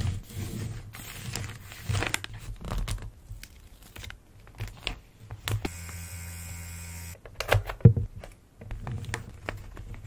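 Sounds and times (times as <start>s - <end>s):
paper and plastic packaging crinkling: 1.1s - 5.0s
buzzing hum: 5.6s - 7.2s.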